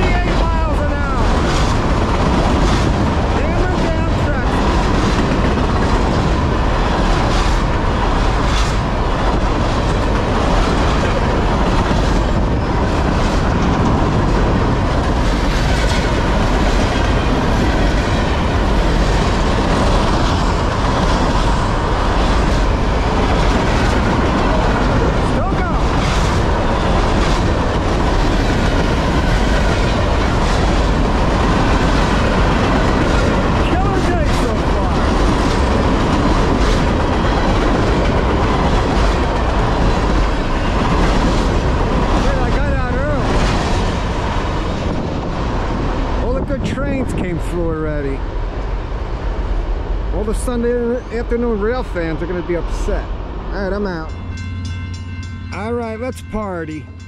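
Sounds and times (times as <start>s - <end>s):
steel wheels on rail: 0.0s - 57.0s.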